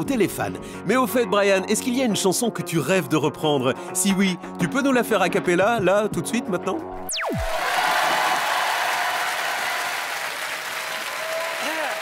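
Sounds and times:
audience applauding: 7.6s - 12.0s.

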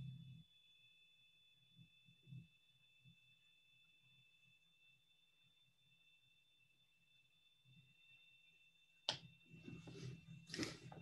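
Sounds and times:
faint electronic hum: 0.0s - 11.0s.

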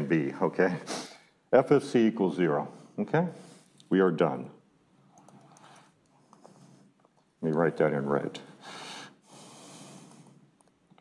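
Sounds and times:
breath close to microphone: 8.5s - 10.5s.

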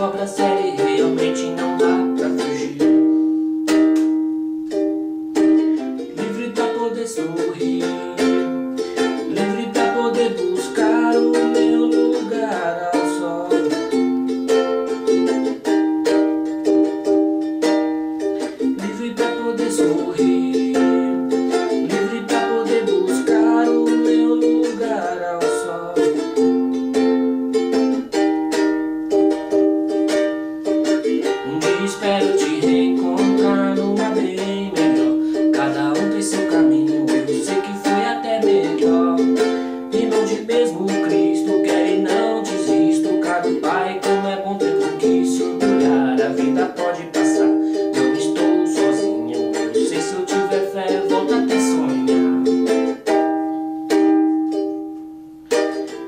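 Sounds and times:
man singing: 0.0s - 3.1s, 5.5s - 15.6s, 18.3s - 26.6s, 30.2s - 53.3s
ukulele strumming: 0.0s - 56.0s.

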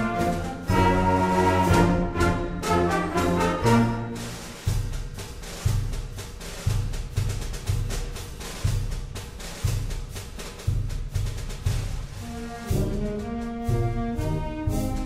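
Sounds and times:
band playing a march: 0.0s - 8.8s, 10.8s - 15.0s
drum strokes: 0.0s - 15.0s.

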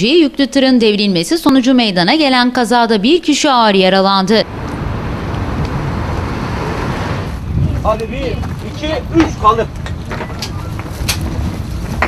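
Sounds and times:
cars driving past: 4.4s - 12.0s.

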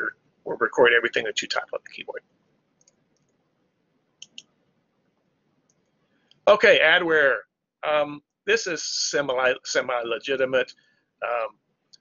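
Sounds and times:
sharp clicks: 4.2s - 4.5s.

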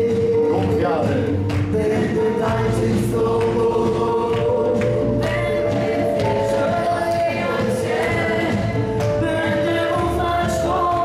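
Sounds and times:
voices singing: 0.0s - 11.0s
worship band playing: 0.0s - 11.0s.

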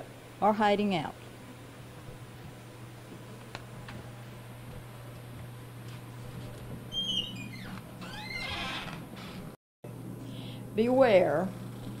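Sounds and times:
door hinges creaking: 6.9s - 9.6s.

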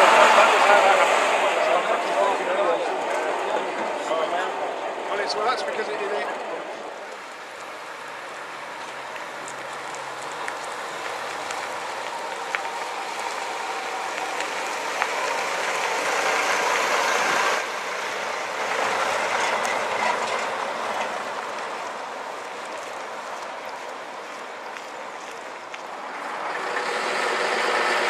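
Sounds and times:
tyres crunching over gravel: 7.1s - 17.2s, 18.2s - 26.5s.

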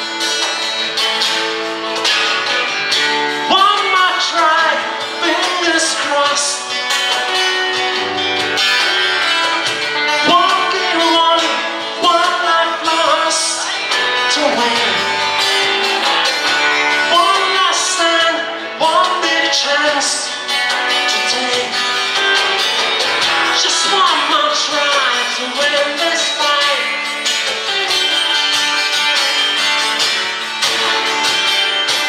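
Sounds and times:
acoustic guitars playing slow song: 0.0s - 32.0s
person singing: 3.4s - 7.2s, 9.4s - 15.8s, 16.6s - 29.6s.

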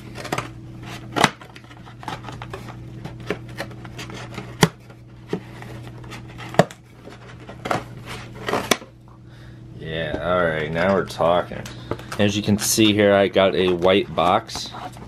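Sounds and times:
cardboard handling noise: 0.0s - 9.0s, 11.8s - 15.0s
steady low hum: 0.0s - 15.0s
cardboard snaps and knocks: 1.1s - 4.9s, 6.4s - 6.8s.

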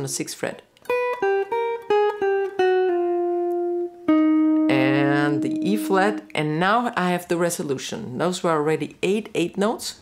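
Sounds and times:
electric guitar picked notes: 0.8s - 6.7s.

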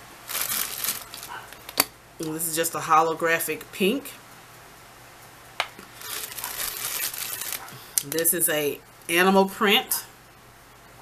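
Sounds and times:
plastic film crinkling: 0.2s - 1.8s, 5.8s - 8.0s.

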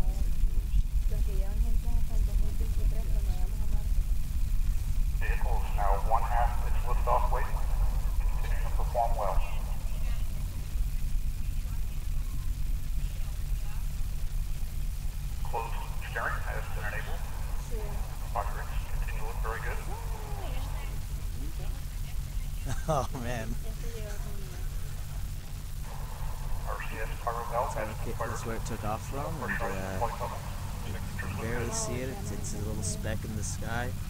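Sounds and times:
distant people talking: 0.0s - 4.3s, 5.1s - 34.0s
steady low rumble: 0.0s - 34.0s.

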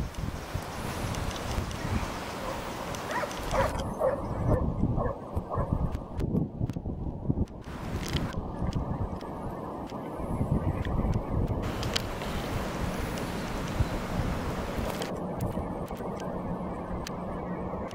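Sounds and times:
wind buffeting microphone: 0.0s - 17.9s.

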